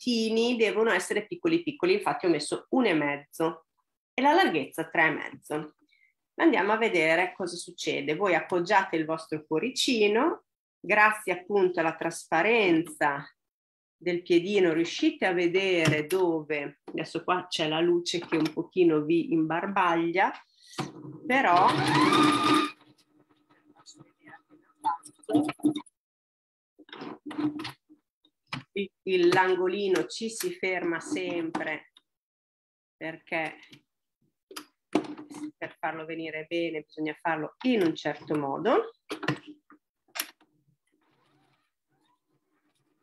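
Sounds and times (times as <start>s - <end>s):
sewing machine stitching: 21.5s - 22.8s.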